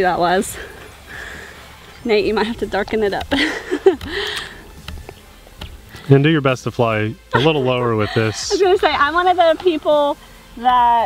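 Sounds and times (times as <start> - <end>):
low background rumble: 0.0 - 11.0
faint clicks: 1.2 - 6.1
breathy laugh: 3.4 - 4.6, 7.4 - 8.8.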